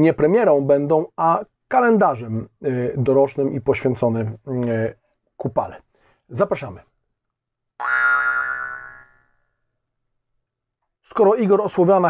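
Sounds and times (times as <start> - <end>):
jaw harp twang: 7.8 - 9.3.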